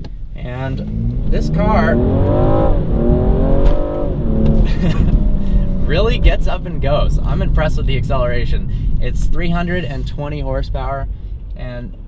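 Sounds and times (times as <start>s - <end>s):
gear upshift: 0.0s - 7.2s
car engine accelerating hard: 0.4s - 10.8s.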